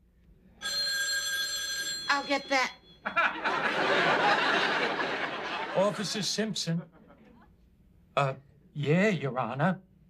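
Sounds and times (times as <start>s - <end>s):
telephone ringing: 0.6s - 3.8s.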